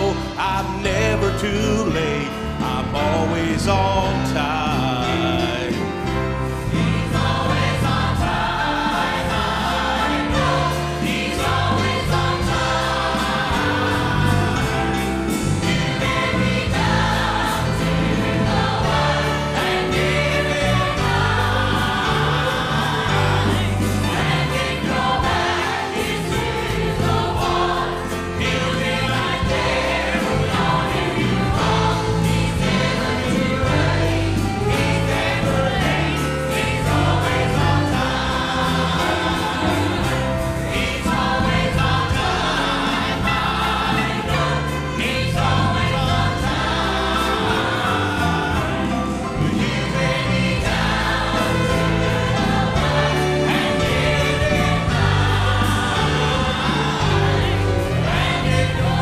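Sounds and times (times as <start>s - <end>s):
band playing: 0.0s - 59.0s
bass notes: 0.0s - 59.0s
choir singing gospel: 0.0s - 59.0s.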